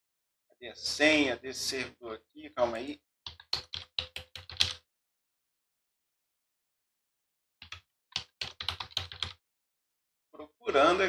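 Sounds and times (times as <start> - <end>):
typing on computer keyboard: 3.3 - 4.8, 7.6 - 9.4.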